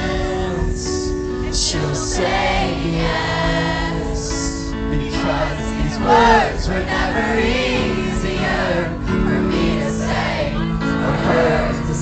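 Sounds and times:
voices singing: 0:00.0 - 0:12.0.

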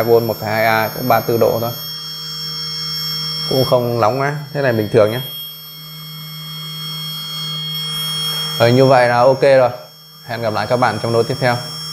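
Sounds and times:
small electric motor humming: 0:00.0 - 0:11.9.

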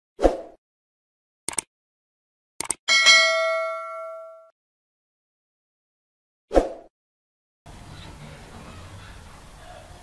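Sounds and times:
notification bell ding: 0:02.9 - 0:04.5.

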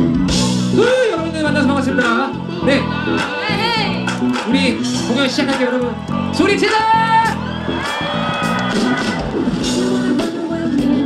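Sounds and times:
live band playing pop song: 0:00.0 - 0:11.0
crowd whooping and shouting: 0:00.1 - 0:11.0.

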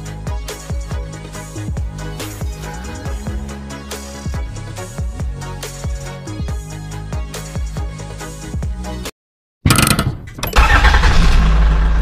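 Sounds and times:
engine rumble: 0:09.7 - 0:12.0.

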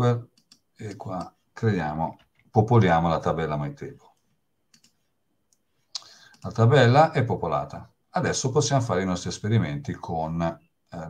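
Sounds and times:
mouse or keyboard clicks: 0:04.7 - 0:06.6.

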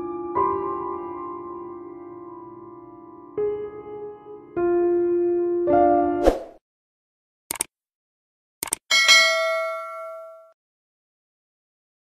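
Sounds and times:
bell chime ding: 0:08.9 - 0:10.6.

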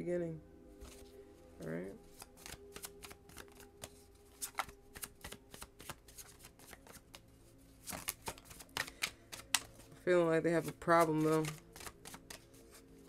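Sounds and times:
cards being shuffled: 0:00.8 - 0:01.1, 0:02.0 - 0:10.0, 0:10.6 - 0:13.0.

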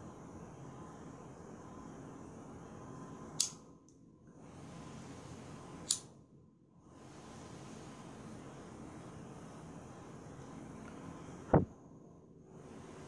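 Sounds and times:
lighter clicks: 0:03.4 - 0:03.6, 0:05.9 - 0:06.1.

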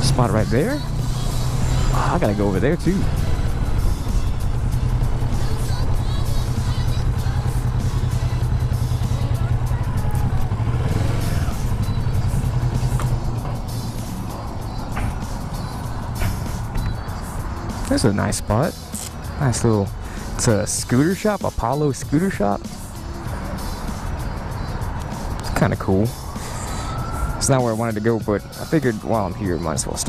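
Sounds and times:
motorcycle engine running: 0:00.0 - 0:18.2.

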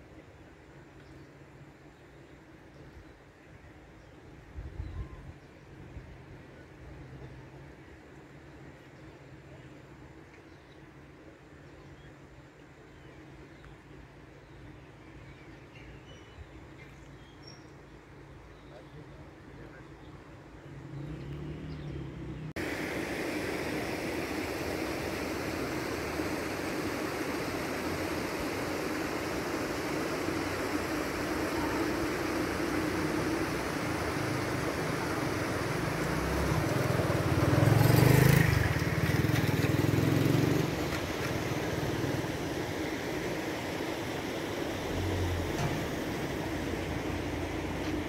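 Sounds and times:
vehicle engine and road noise: 0:16.6 - 0:48.0.

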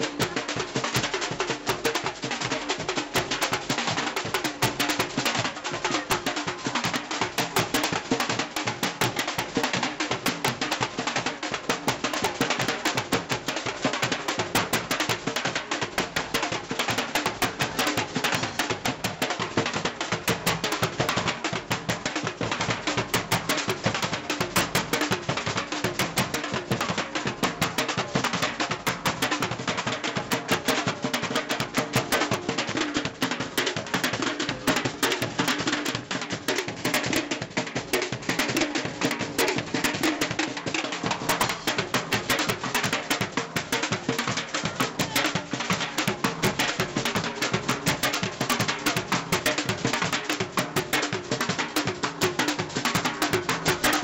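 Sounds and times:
street percussion band drumming: 0:00.0 - 0:54.0.

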